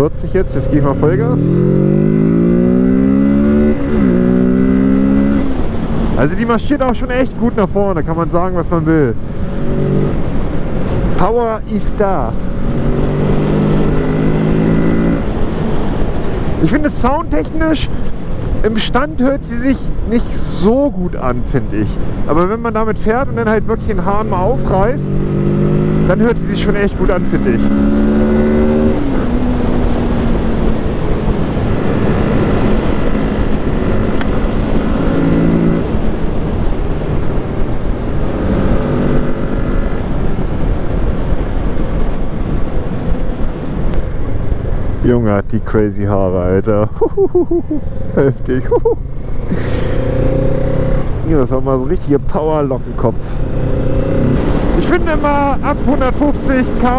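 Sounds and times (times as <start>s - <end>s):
motorcycle engine at full throttle: 0.0s - 20.9s, 21.7s - 45.1s, 47.8s - 56.9s
wind noise: 0.0s - 45.6s, 46.2s - 56.9s.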